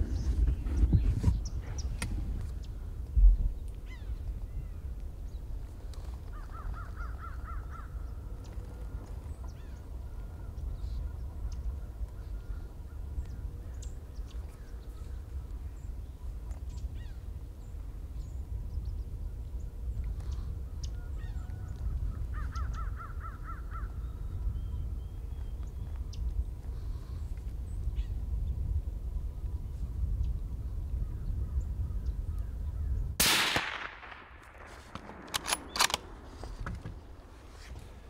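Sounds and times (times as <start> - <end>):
low wind rumble: 0.0 - 38.0
faint bird calls: 0.1 - 4.9, 5.9 - 18.4, 19.0 - 28.2
suppressed rifle shot with echo: 33.2 - 37.2
sharp clicks: 33.3 - 36.9.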